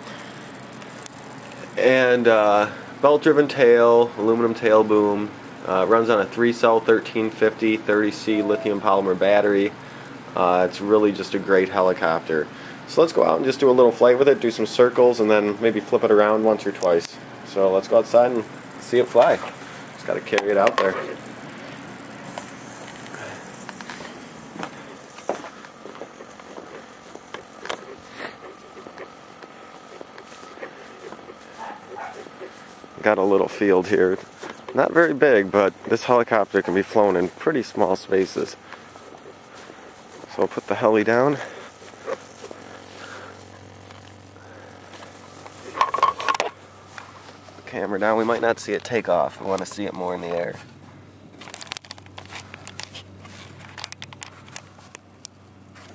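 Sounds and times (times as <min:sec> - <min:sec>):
steady background hiss: 0:00.0 - 0:55.9
rustling and scraping: 0:19.1 - 0:48.6, 0:49.3 - 0:55.1
walking noise: 0:22.2 - 0:44.2
camera handling noise: 0:22.3 - 0:32.5, 0:51.4 - 0:55.1.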